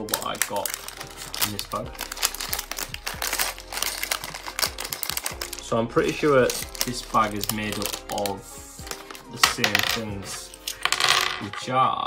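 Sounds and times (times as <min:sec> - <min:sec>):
plastic bag crinkling: 0:00.0 - 0:10.9.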